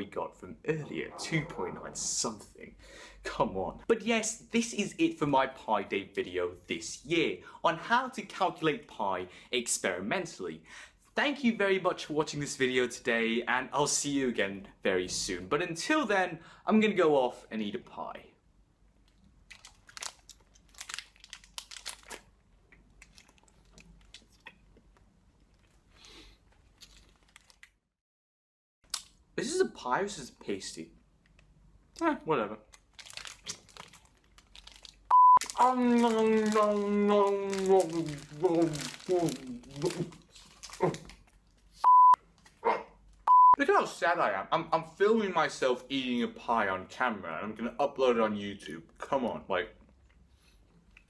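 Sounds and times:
faint crackles and clicks: 0:18.9 - 0:27.8, 0:31.2 - 0:32.0, 0:32.6 - 0:43.3
censor bleep: 0:35.1 - 0:35.5, 0:41.8 - 0:42.2, 0:43.3 - 0:43.6
man's muffled vocal sounds eating: 0:35.5 - 0:41.2.

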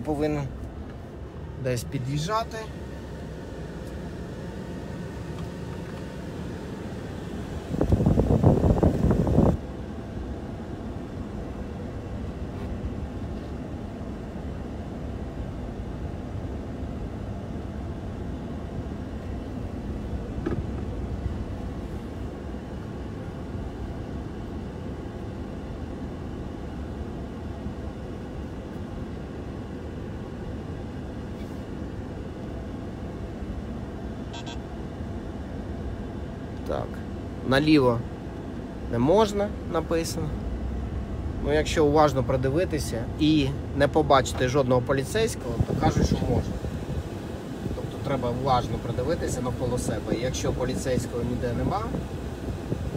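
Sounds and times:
car engine and road noise: 0:00.0 - 0:52.9.

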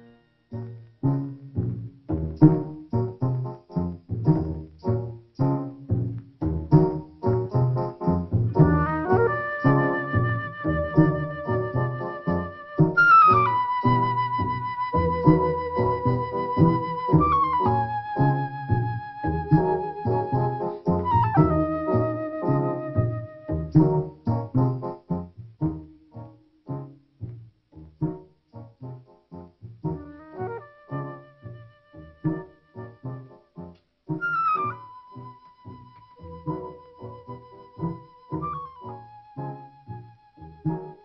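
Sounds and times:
film score music: 0:00.0 - 0:41.0.

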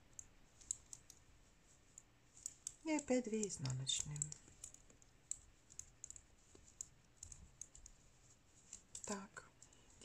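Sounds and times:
knitting needles clicking: 0:00.0 - 0:10.0.

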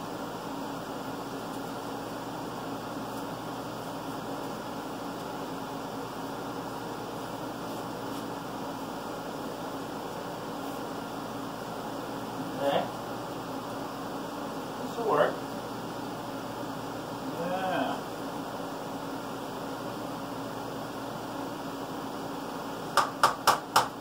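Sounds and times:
machine hum and hiss: 0:00.0 - 0:24.0.

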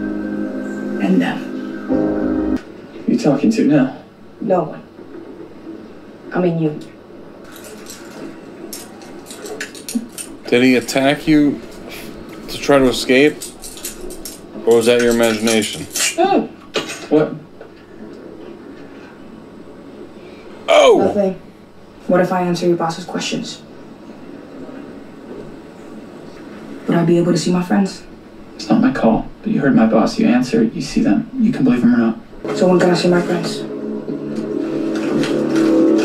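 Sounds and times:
low sustained drone: 0:00.0 - 0:02.6.

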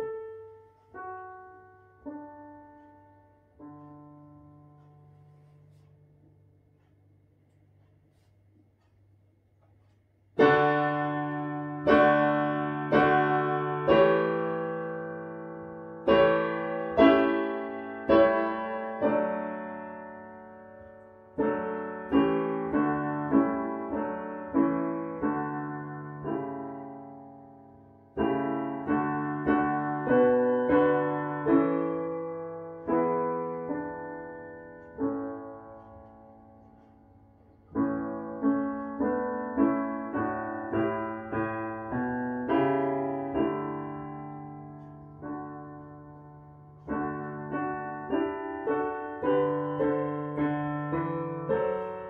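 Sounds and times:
piano playing hymn chords: 0:00.0 - 0:06.2, 0:10.4 - 0:52.0.

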